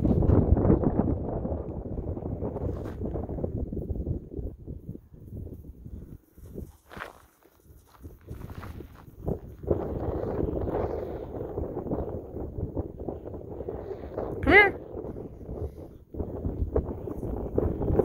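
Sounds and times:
wind on microphone: 0:00.0 - 0:18.0
footsteps in dry grass: 0:05.4 - 0:10.4.

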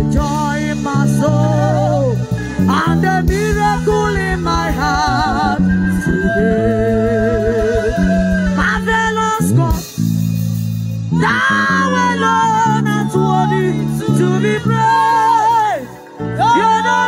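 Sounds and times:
drums keeping steady beat: 0:00.0 - 0:12.1
bass guitar: 0:00.0 - 0:17.0
electric guitar: 0:00.0 - 0:17.0
keyboards: 0:00.0 - 0:17.0
woman singing with vibrato: 0:00.8 - 0:09.8, 0:11.2 - 0:17.0.

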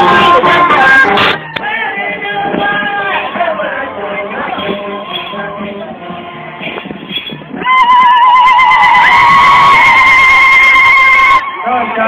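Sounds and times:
crowd voices: 0:00.0 - 0:12.0
loud high wavering ululation: 0:07.2 - 0:11.7.

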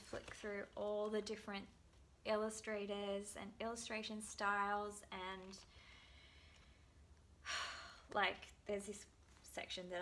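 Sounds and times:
woman inhaling: 0:05.7 - 0:08.1.

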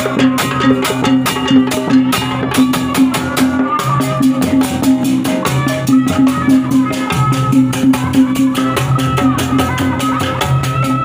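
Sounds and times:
drum-led ensemble music: 0:00.0 - 0:11.0.

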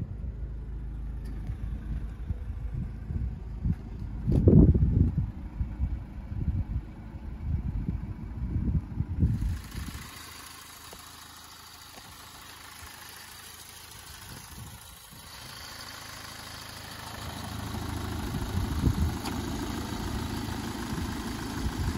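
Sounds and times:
diesel engine idling: 0:00.0 - 0:21.9
wind buffeting microphone: 0:01.5 - 0:10.1, 0:18.2 - 0:20.3.

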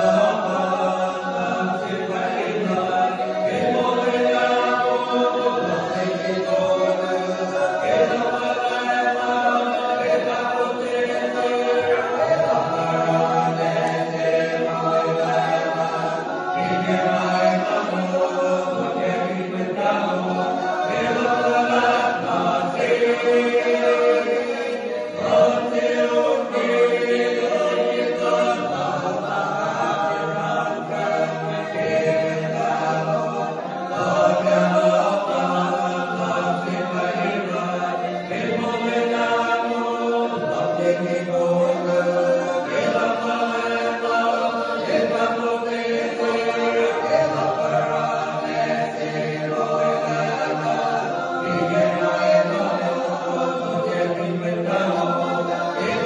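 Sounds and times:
men's choir singing: 0:00.0 - 0:56.0.

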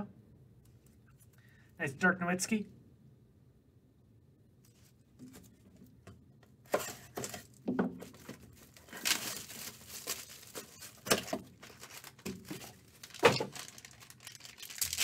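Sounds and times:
plastic wrappers crinkling: 0:06.8 - 0:15.0.

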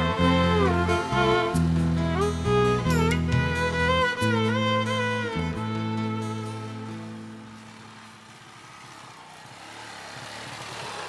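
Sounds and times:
background music: 0:00.0 - 0:08.5
small motorcycle engine running: 0:00.0 - 0:11.0.

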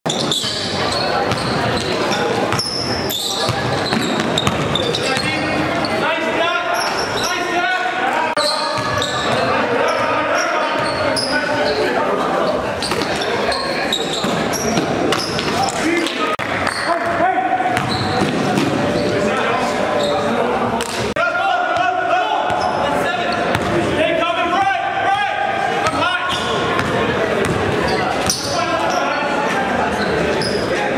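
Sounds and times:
indistinct voices echoing: 0:00.1 - 0:30.9
basketball bouncing on court floor: 0:01.2 - 0:02.7, 0:03.4 - 0:05.4, 0:08.7 - 0:09.5, 0:17.8 - 0:18.8, 0:23.5 - 0:23.8, 0:26.7 - 0:28.4.

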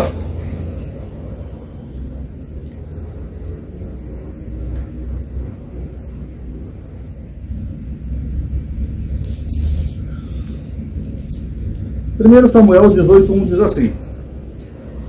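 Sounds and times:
low background rumble: 0:00.0 - 0:15.0.

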